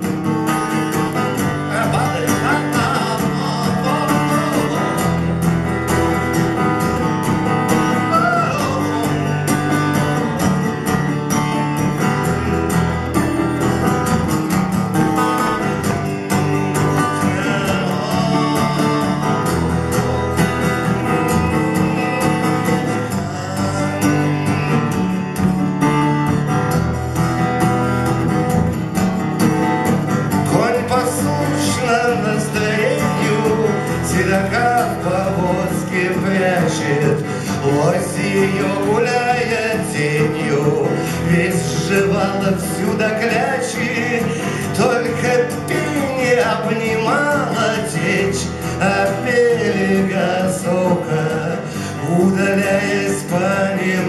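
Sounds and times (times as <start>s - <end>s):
acoustic guitar strumming: 0.0s - 54.0s
man singing: 1.0s - 6.3s, 7.0s - 10.8s, 15.4s - 25.2s, 30.4s - 54.0s.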